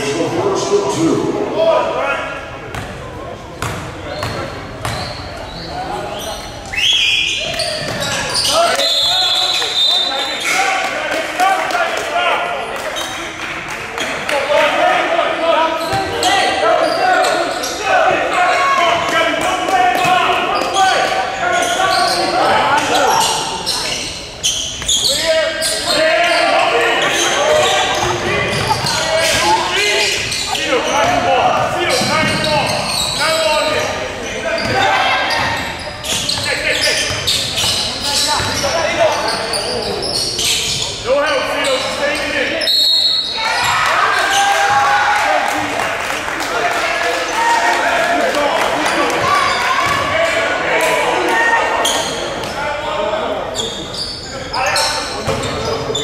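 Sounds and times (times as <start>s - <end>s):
people shouting and chattering: 0.0s - 56.0s.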